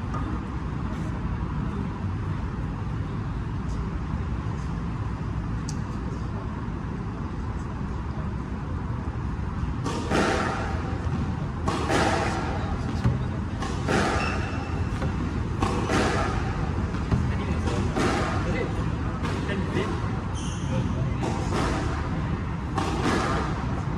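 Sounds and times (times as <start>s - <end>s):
steady low hum: 0.0s - 23.9s
squash ball hitting walls: 9.8s - 20.0s, 20.8s - 23.9s.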